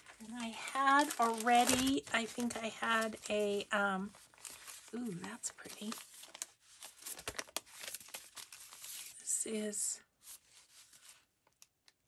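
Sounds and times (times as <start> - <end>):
paper rustling and crinkling: 0.0 - 9.4, 10.2 - 11.9.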